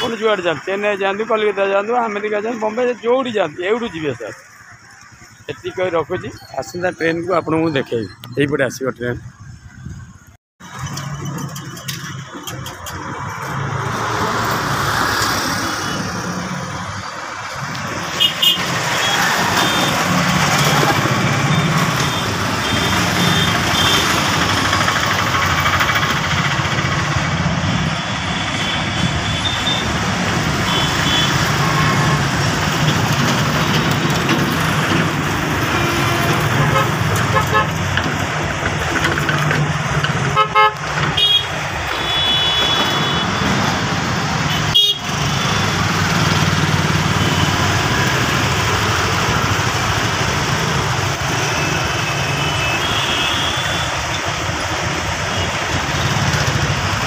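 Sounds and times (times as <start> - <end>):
scooter and motorcycle engines: 0.0 - 9.1, 10.6 - 57.0
road and wind noise: 0.0 - 57.0.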